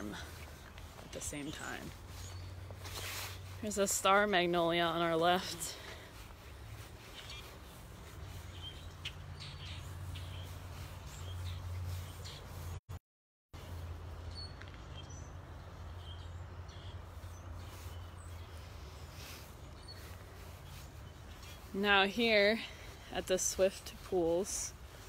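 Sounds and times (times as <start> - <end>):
bird chirps: 6.8 - 12.8, 13.7 - 21.8.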